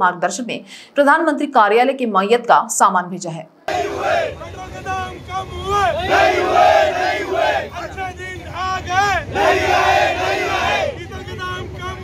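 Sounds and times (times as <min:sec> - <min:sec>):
crowd shouting a slogan: 0:03.7 - 0:12.0.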